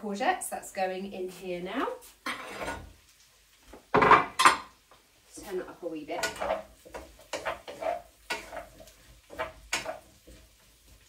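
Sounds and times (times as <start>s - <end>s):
spatula scraping frying pan: 2.0s - 3.1s, 4.0s - 11.0s.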